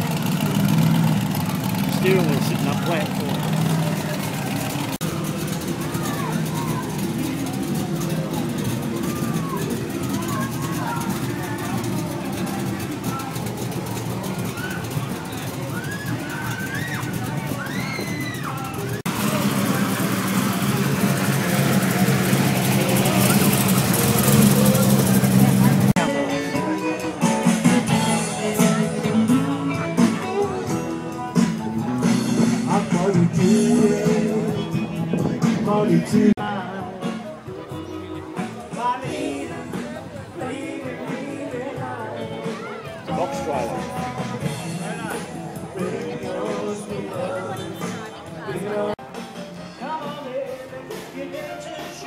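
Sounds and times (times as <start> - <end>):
car engine idling: 0.0 - 26.0
crowd chatter: 0.0 - 52.0.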